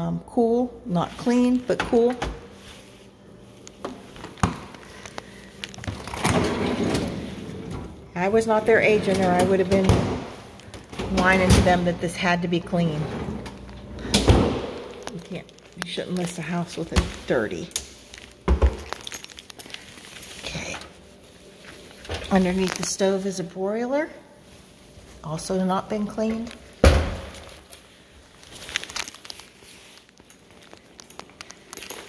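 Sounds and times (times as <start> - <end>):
refrigerator door shutting: 5.8 - 8.0, 13.0 - 14.9, 26.8 - 27.6
freezer drawer sliding open: 5.9 - 8.0.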